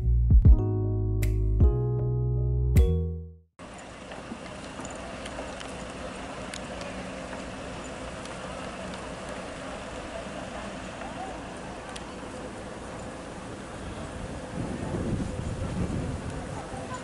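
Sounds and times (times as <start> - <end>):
piano music: 0.0 - 3.4.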